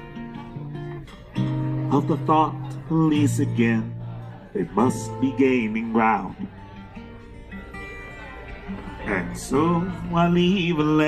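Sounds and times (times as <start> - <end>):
acoustic guitar played quietly: 0.0 - 11.0
person singing: 1.6 - 6.7, 9.0 - 11.0.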